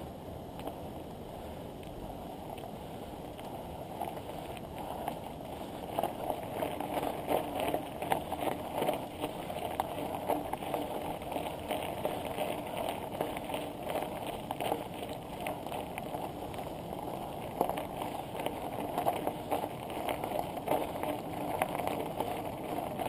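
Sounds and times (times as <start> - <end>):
bicycle tyres crunching on gravel: 0.0 - 23.0.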